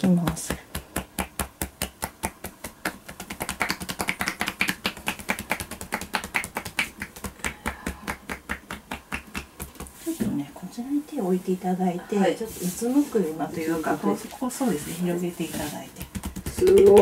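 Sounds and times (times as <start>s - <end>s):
hands slapping on a back: 0.0s - 10.3s, 15.6s - 17.0s.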